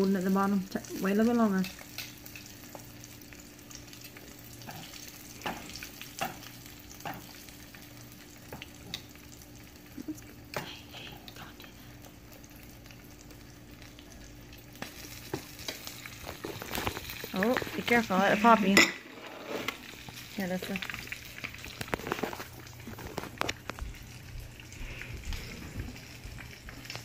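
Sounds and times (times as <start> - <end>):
oil crackling and popping: 0.0 - 18.8, 19.6 - 27.0
fish sizzling in oil: 0.0 - 27.0.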